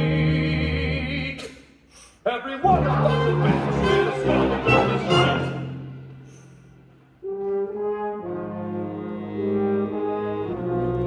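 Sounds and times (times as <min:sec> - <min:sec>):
orchestra music: 0:02.4 - 0:11.0
sustained brass chords: 0:02.6 - 0:06.3.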